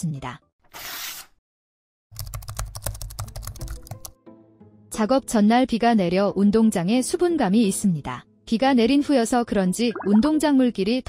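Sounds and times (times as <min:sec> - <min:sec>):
keyboard typing clicks: 0:02.2 - 0:04.1.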